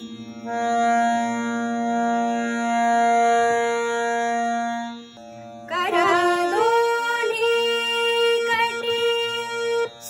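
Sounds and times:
harmonium chords: 0.0s - 10.0s.

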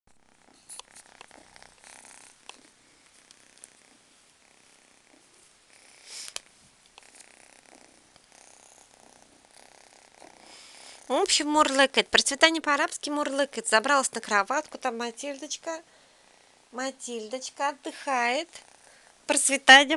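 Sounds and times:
rustles: 0.2s - 11.2s
kitten purring: 0.2s - 12.2s, 17.7s - 19.3s.

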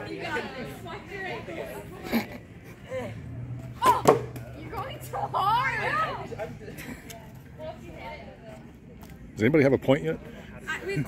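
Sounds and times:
faint people talking: 0.0s - 11.0s
quiet outdoor ambience: 0.0s - 11.0s.

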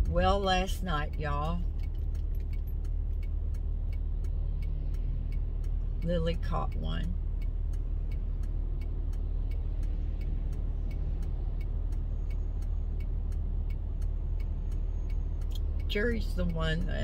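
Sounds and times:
car rumble inside cabin: 0.0s - 17.0s
faint regular ticks: 0.8s - 17.0s.

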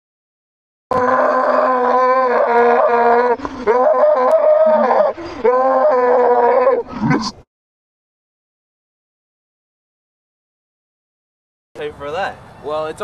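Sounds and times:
boy screaming in rage: 1.0s - 6.8s.

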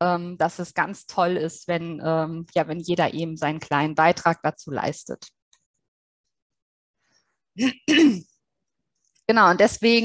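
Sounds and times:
woman clearing her throat: 7.6s - 8.3s.

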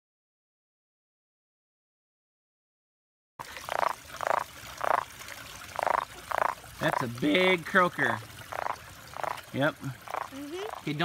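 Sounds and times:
frog croaking: 3.6s - 5.1s, 5.7s - 7.2s, 8.0s - 11.0s.

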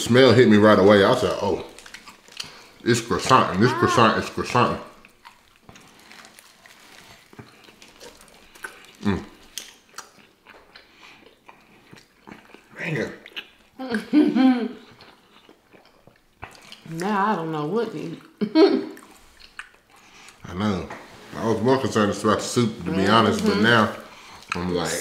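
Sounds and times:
close chewing with wet mouth clicks: 1.7s - 3.5s, 5.0s - 14.0s, 14.8s - 17.2s, 18.2s - 20.4s
person humming in enjoyment: 3.6s - 4.2s.

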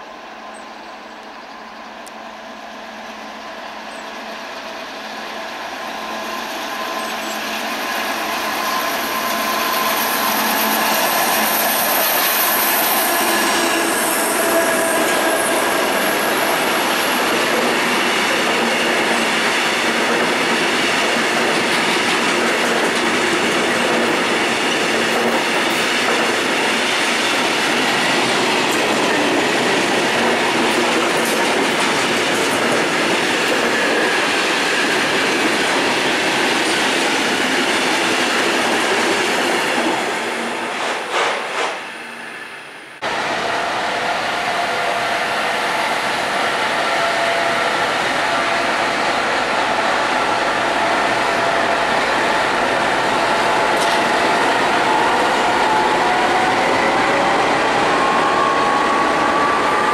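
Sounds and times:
diesel locomotive engine: 0.0s - 59.9s
train wheels rolling on rails: 0.0s - 59.9s.

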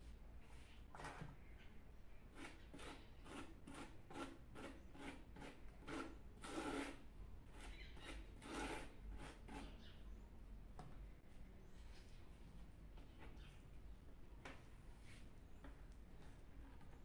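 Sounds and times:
hand scraping mortar on vase: 2.3s - 9.8s.

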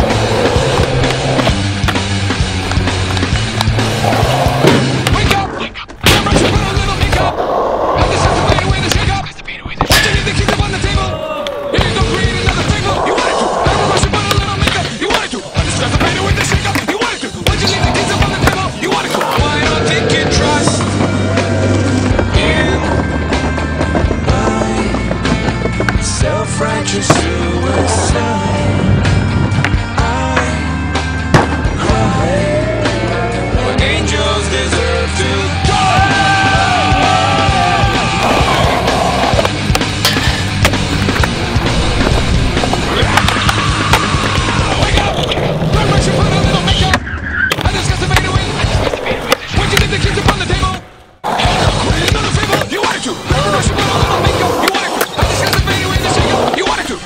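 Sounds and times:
heavy rock song: 0.0s - 5.5s, 9.9s - 46.8s
skateboard wheels rolling: 0.0s - 5.7s, 6.4s - 9.2s, 10.4s - 29.7s, 35.9s - 57.0s.

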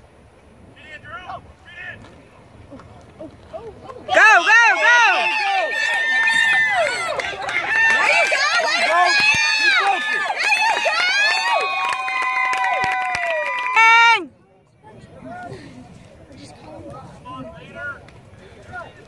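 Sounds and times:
spectators yelling and screaming: 4.0s - 14.3s.

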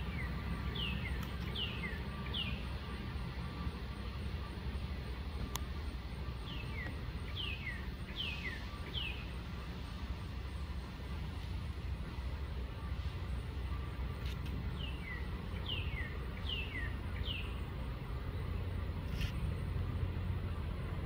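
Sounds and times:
bird whistling song: 0.0s - 2.7s, 6.4s - 9.4s, 14.8s - 17.6s.

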